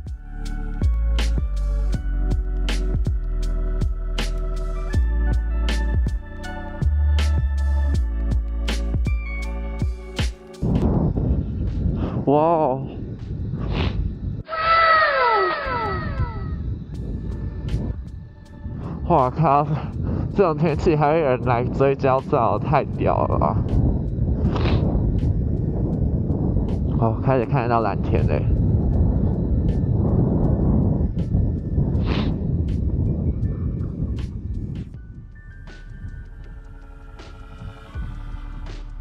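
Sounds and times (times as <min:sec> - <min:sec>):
background music: 0:00.0 - 0:12.0, 0:14.5 - 0:26.0, 0:26.6 - 0:39.0
wind rushing over microphone: 0:09.9 - 0:39.0.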